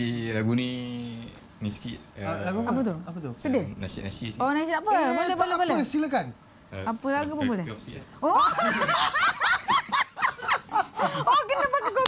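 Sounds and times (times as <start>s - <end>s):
man and woman laughing: 8.2s - 12.0s.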